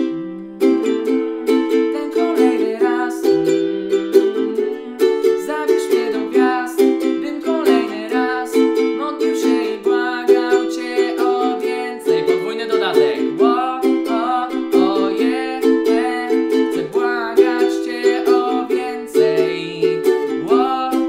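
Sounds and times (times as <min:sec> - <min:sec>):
man singing: 0:00.0 - 0:21.0
ukulele strumming: 0:00.0 - 0:21.0.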